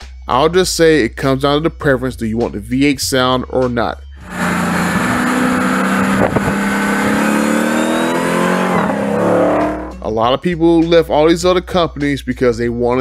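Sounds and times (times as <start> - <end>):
car engine accelerating hard: 4.2 - 10.0.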